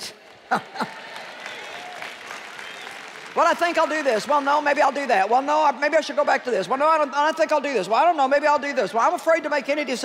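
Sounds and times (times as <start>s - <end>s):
audience applauding: 0.0s - 5.9s.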